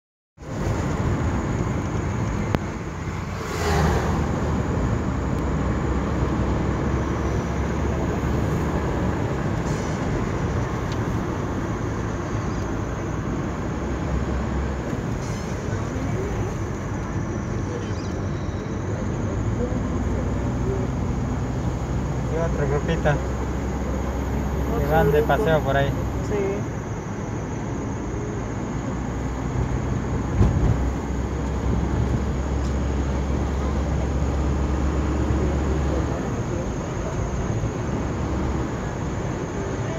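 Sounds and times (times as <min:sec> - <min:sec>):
car engine and tyre rumble: 0:00.4 - 0:39.9
air rushing past: 0:02.3 - 0:06.3.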